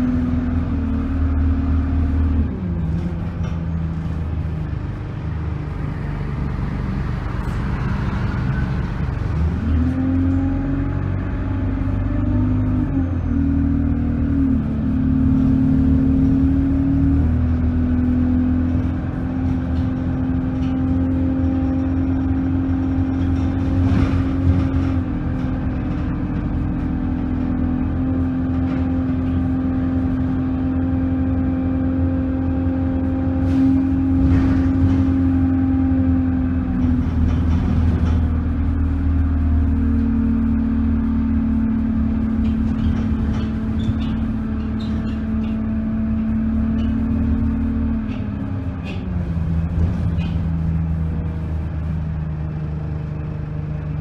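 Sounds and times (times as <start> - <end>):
bus engine drone: 0.0 - 54.0
short knocks and rattles: 42.2 - 45.7.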